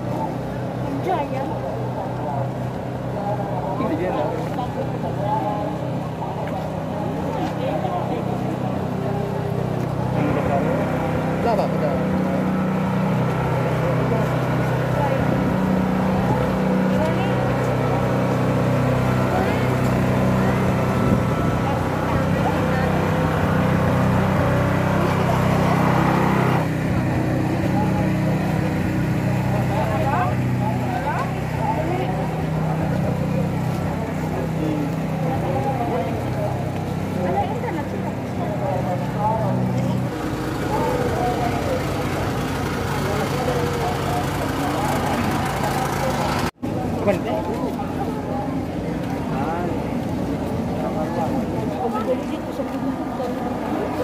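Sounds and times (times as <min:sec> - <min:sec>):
crowd voices: 0:00.0 - 0:54.0
small engine humming: 0:00.0 - 0:54.0.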